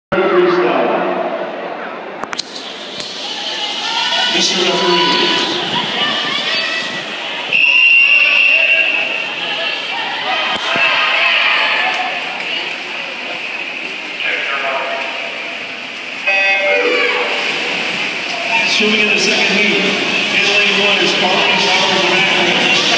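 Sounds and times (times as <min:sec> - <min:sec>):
crowd chatter and cheering: 0:00.2 - 0:22.9
long high whistle: 0:07.5 - 0:09.1
electronic start horn: 0:16.3 - 0:17.5.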